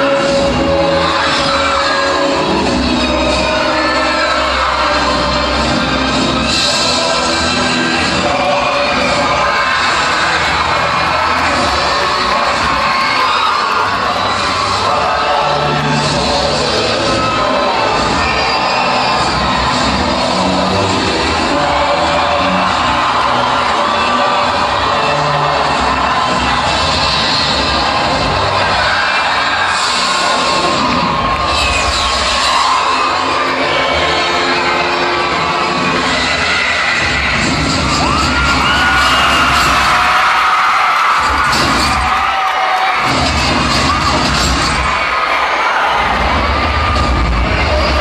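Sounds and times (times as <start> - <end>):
audience cheering and screaming: 0.0 - 48.0
loud music over sound system: 0.0 - 48.0.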